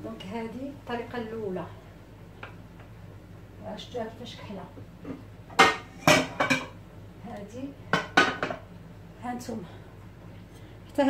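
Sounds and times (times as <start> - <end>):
metal frying pans clanking: 5.5 - 6.8, 8.0 - 8.7.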